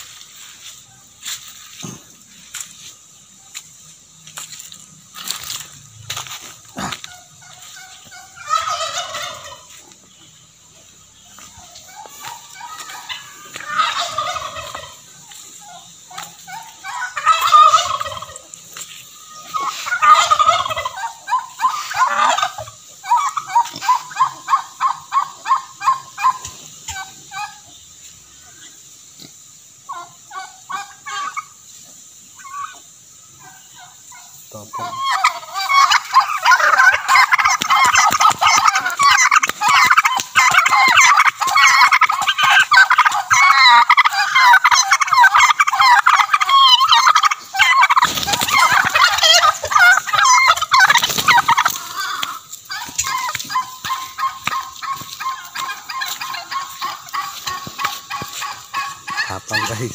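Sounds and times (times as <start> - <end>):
turkeys gobbling: 0.0 - 59.9.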